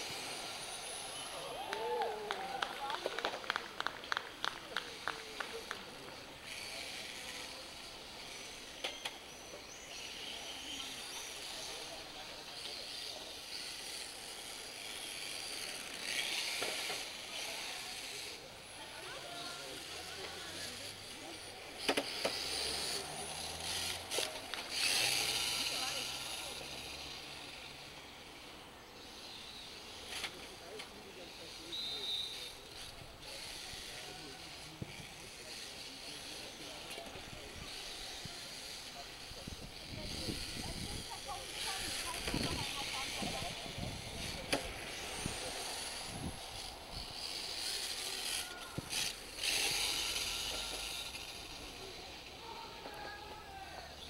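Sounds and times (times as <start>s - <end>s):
rc car motor whine: 0.0s - 54.0s
quick run of clicks: 1.6s - 6.7s.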